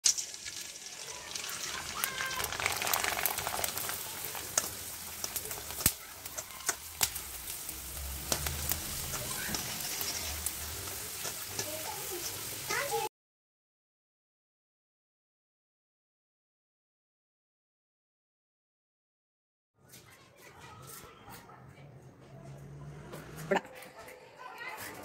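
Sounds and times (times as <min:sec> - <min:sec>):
oil popping: 0:00.0 - 0:12.0
deep-frying sizzle: 0:00.0 - 0:13.1.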